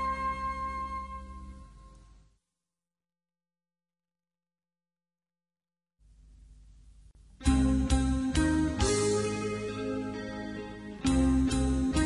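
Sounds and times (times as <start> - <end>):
music: 0.0 - 2.4, 7.3 - 12.0
faint steady hum: 0.0 - 2.6, 6.0 - 12.0.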